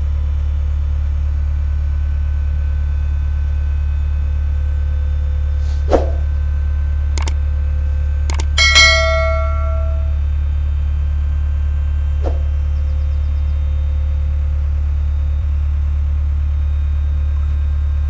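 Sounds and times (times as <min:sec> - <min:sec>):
bright bell ding: 0:08.3 - 0:10.2
clicks: 0:08.3 - 0:10.2
hydraulic pump humming: 0:08.3 - 0:10.2.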